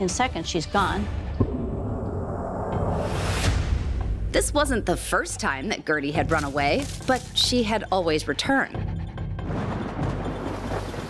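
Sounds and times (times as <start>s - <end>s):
low dark rumbling drone: 1.2s - 5.2s.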